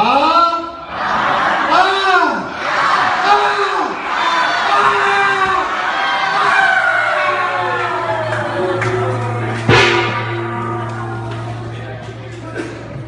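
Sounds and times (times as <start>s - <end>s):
steady low hum: 7.0s - 13.0s
loud thump: 9.6s - 11.6s.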